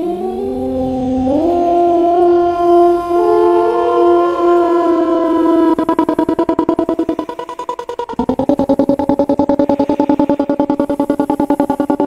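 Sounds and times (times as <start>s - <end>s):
layered droning tones: 0.0s - 12.0s
fast rhythmic chopping: 5.8s - 12.0s.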